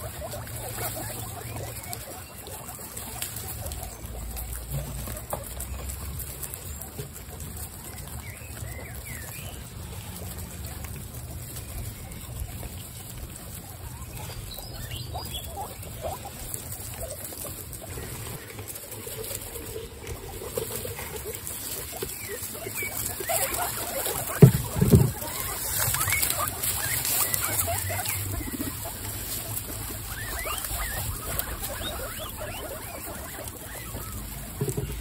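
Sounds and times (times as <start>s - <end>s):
guinea pigs munching and rustling: 0.0s - 35.0s.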